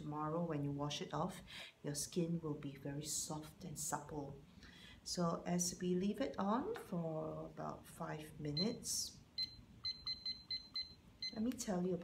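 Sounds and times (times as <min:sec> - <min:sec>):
high electronic keypad beeps: 0:09.4 - 0:11.4.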